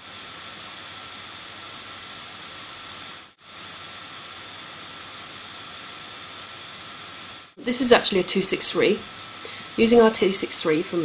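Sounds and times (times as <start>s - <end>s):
faint high whine: 0.0s - 11.0s
microphone hiss: 4.8s - 11.0s.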